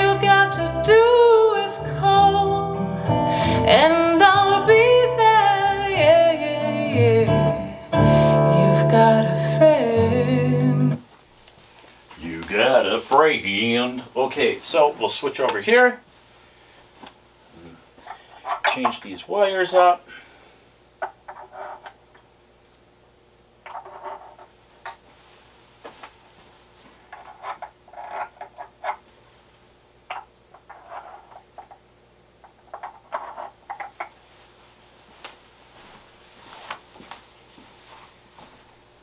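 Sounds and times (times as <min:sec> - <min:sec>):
speaker cables being handled: 0:23.6 - 0:29.5, 0:32.6 - 0:38.7.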